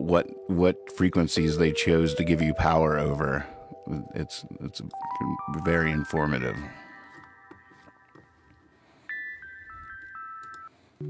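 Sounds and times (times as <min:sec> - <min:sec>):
song mix music: 0:00.0 - 0:10.7.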